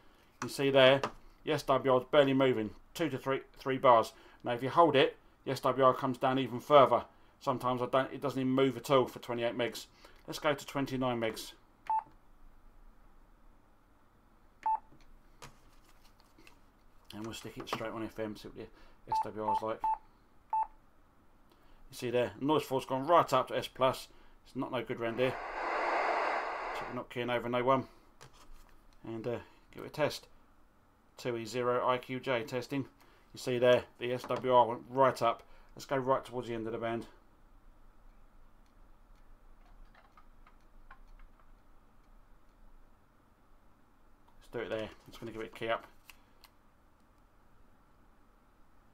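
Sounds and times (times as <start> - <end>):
low hiss: 24.1 - 27.8.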